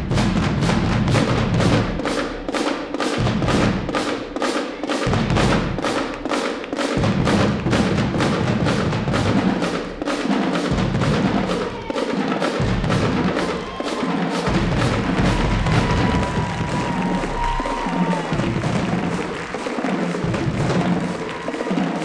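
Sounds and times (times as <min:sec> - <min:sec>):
marching band percussion: 0:00.0 - 0:22.0.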